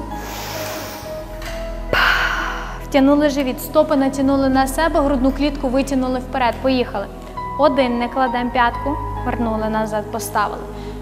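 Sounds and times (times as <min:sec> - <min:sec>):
deep nasal inhale: 0:00.0 - 0:02.9
background music: 0:00.0 - 0:11.0.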